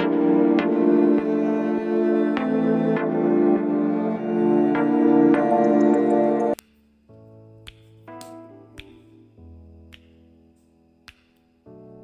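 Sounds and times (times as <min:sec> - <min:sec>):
soft music of sustained chords: 0:00.0 - 0:12.0
finger snap: 0:05.3 - 0:12.0.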